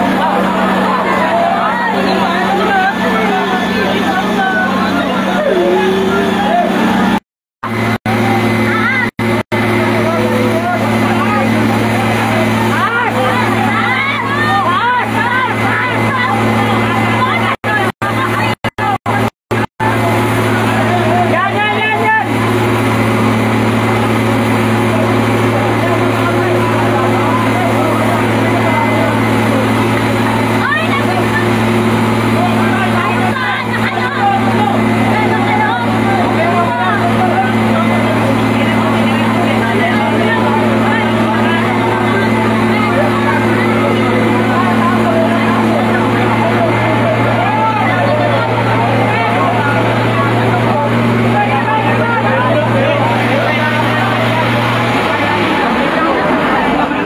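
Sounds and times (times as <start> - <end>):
fire truck engine drone: 0.0 - 57.0
people shouting and talking: 0.0 - 57.0.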